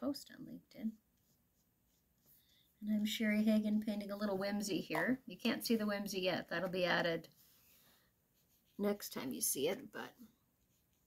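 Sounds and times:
paintbrush scratching on paper: 0.9 - 11.0
woman speaking: 2.8 - 7.3, 8.8 - 10.2.

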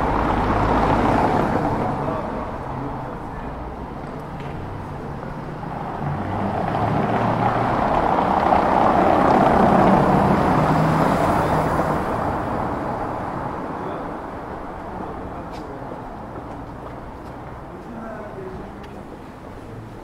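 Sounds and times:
car tyres on cobblestones: 0.0 - 20.0.

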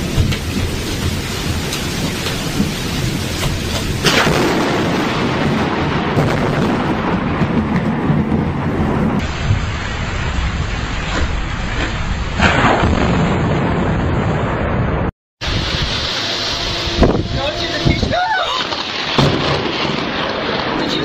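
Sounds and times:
steady rain: 0.0 - 21.0
thunder crack: 0.0 - 21.0
thunder rumbling: 0.0 - 21.0.

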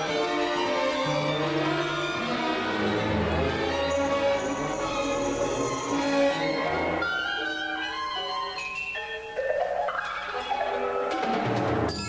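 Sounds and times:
orchestra playing held chords: 0.0 - 7.4.

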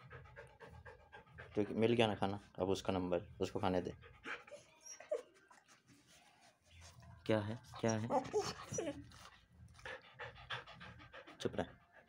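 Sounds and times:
dog whining: 4.3 - 5.4, 7.8 - 9.1.

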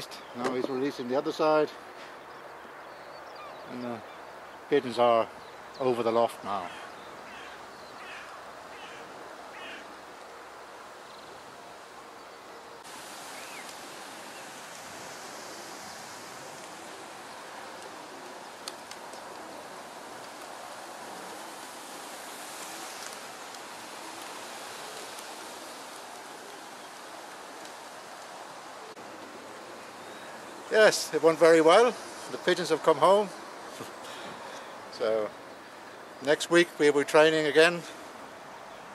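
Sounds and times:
outdoor background hiss: 0.0 - 38.9
bird chirps: 2.0 - 4.4.

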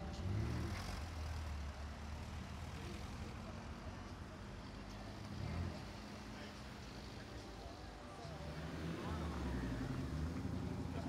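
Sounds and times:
sports car engine pulling away: 0.1 - 2.1.

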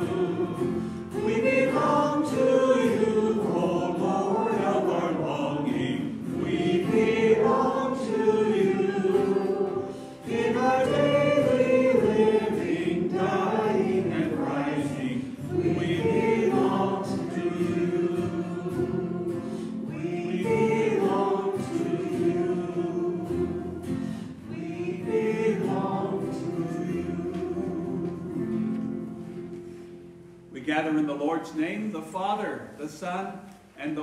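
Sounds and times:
group singing a hymn: 0.0 - 29.8.

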